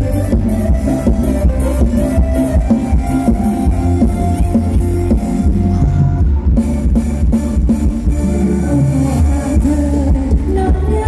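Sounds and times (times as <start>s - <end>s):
heavy bass: 0.0s - 11.0s
live band dance music: 0.0s - 11.0s.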